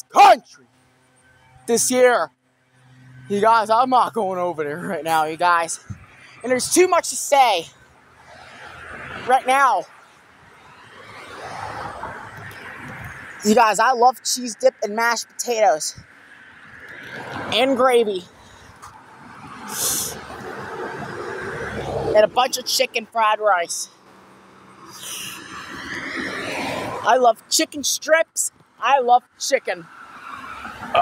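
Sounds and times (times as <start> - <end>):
car passing on road: 0.0 - 31.0.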